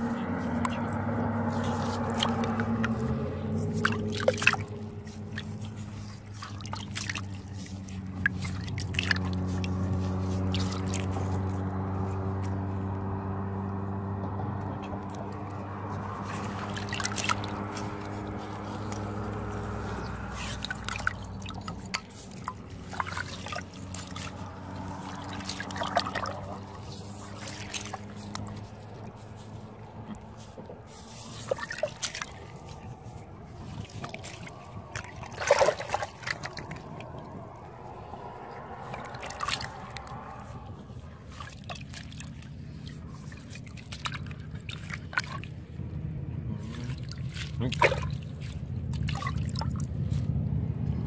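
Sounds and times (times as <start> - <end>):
hand squelching in wet mud: 0.0 - 13.9, 14.5 - 50.4
sharp splashes: 0.3 - 12.3, 15.0 - 45.8, 46.5 - 50.3.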